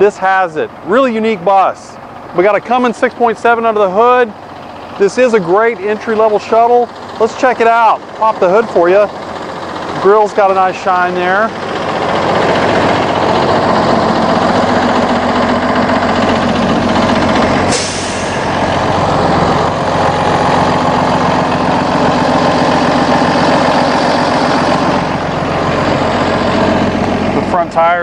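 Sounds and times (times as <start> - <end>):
diesel bus engine idling: 0.0 - 28.0.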